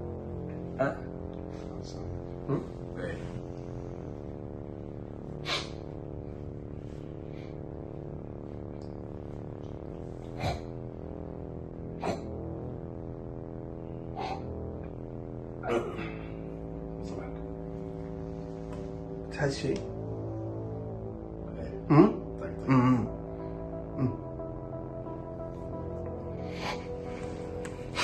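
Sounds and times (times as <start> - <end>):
steady background music: 0.0 - 28.0.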